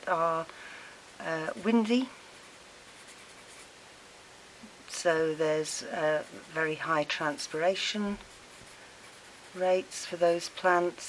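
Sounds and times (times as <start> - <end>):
marker pen scratching on paper: 2.4 - 3.7, 5.1 - 10.8.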